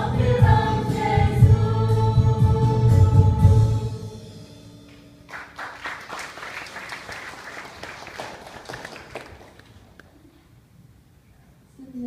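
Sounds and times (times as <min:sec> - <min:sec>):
audience applauding: 0:05.3 - 0:10.0.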